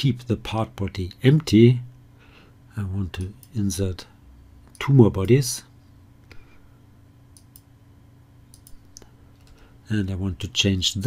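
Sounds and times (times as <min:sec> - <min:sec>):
faint low hum: 0:00.0 - 0:11.0
computer mouse clicks: 0:07.3 - 0:07.7, 0:08.5 - 0:09.6.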